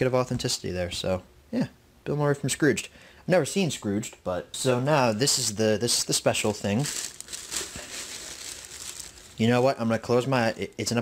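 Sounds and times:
packing wrap crinkling: 6.2 - 11.0.

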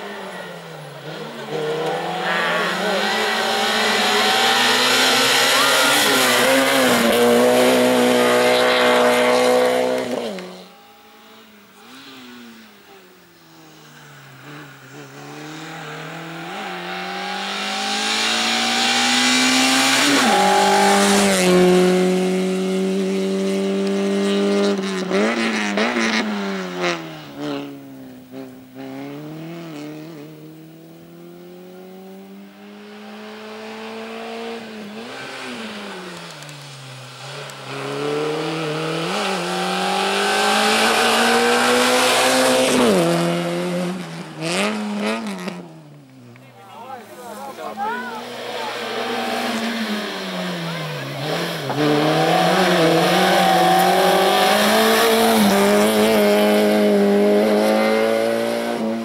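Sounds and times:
race car engine revving: 0.0 - 12.9, 13.9 - 59.0.

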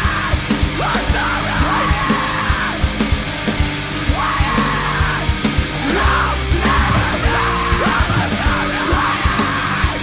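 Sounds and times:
screamed vocals: 0.0 - 2.9, 4.0 - 10.0
distorted guitars: 0.0 - 10.0
drums: 0.0 - 10.0.

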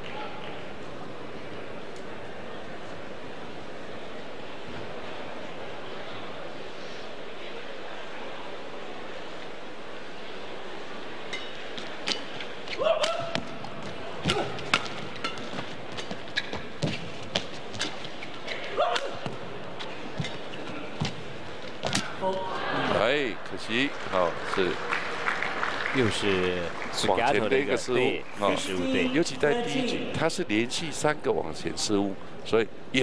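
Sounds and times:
crowded indoor hall background: 0.0 - 33.0
rackets striking shuttlecock: 11.3 - 19.4
shoes squeaking on court: 13.4 - 22.2.

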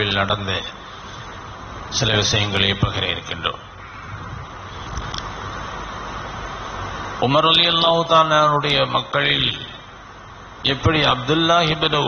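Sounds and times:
man chanting sermon: 10.6 - 12.0.

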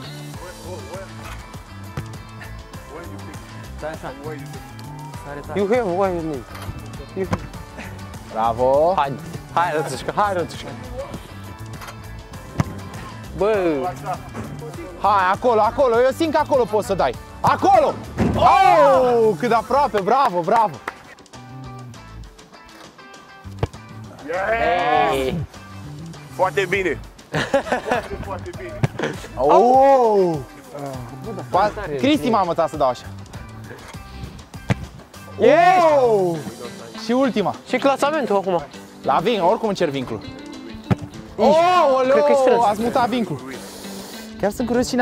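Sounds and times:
background music: 0.0 - 45.0
football kicked thud: 1.9 - 2.2, 7.3 - 7.6, 12.5 - 13.0, 18.2 - 18.5, 23.5 - 23.9, 28.8 - 29.1, 34.6 - 35.0, 40.8 - 41.2.

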